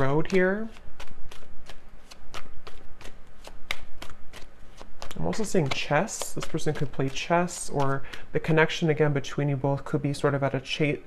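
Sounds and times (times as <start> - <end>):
cards being shuffled: 0.0 - 9.0.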